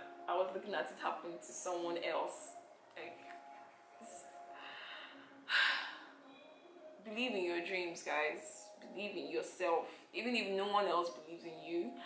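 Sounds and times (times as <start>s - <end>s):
woman gasping: 4.8s - 6.1s.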